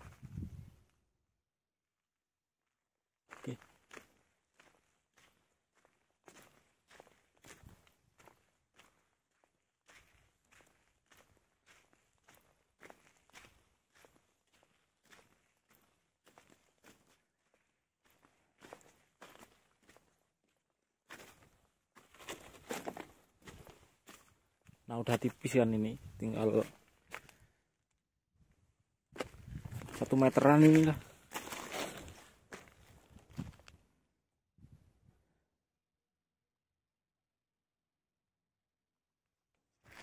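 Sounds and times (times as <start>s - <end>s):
footsteps on gravel and sand: 3.3s - 20.2s, 21.1s - 27.4s, 29.2s - 33.8s.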